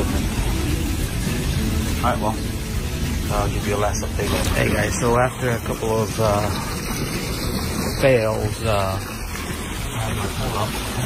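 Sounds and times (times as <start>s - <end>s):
water rushing from pool jet: 0.0s - 11.0s.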